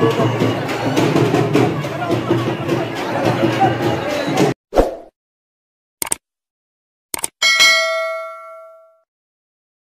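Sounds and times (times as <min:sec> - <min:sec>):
short mouse clicks: 0:06.0 - 0:06.2
bright bell ding: 0:07.4 - 0:09.0.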